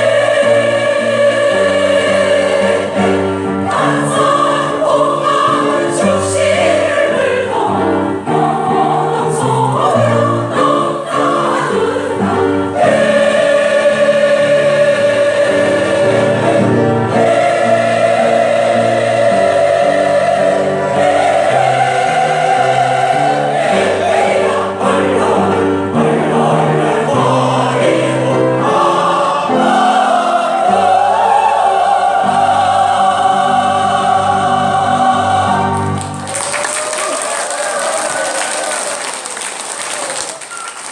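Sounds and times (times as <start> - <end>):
mixed choir singing in harmony: 0.0 - 36.6.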